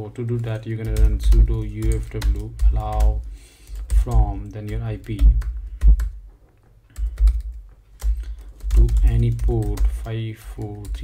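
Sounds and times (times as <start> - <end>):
typing on computer keyboard: 0.2 - 6.2, 6.9 - 11.0.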